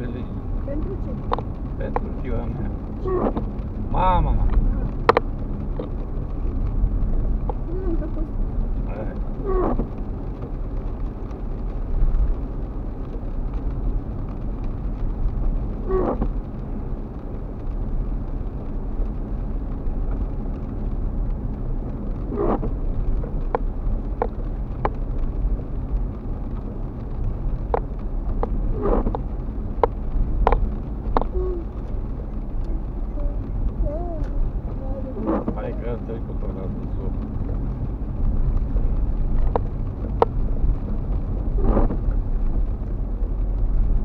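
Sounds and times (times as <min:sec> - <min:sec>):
car engine rumble inside cabin: 0:00.0 - 0:44.0
tyres on wet road: 0:00.0 - 0:44.0.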